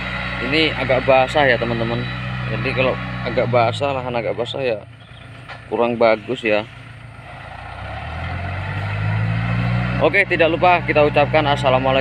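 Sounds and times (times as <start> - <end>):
tractor engine running: 0.0 - 12.0.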